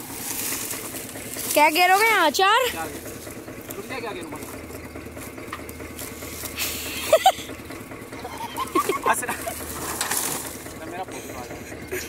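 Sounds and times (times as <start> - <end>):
cane stalks rustling and knocking: 0.0 - 12.0
low engine hum: 0.0 - 12.0.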